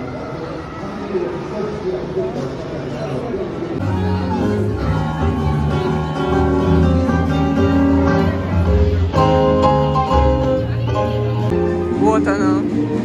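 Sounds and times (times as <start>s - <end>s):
jazz combo playing: 4.6s - 13.0s.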